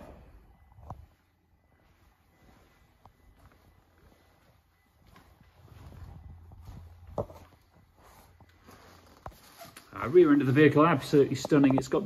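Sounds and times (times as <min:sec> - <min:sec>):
footsteps on tiled floor: 0:01.8 - 0:12.0.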